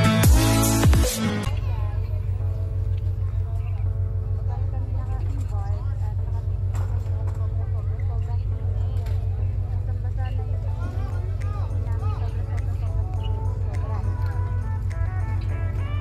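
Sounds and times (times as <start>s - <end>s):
large engine humming: 0.0s - 16.0s
people talking: 1.2s - 16.0s.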